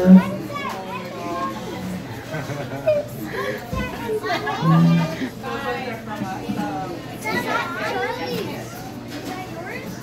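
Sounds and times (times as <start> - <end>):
children calling and chattering: 0.0 - 10.0
murmur of busy room: 0.0 - 10.0.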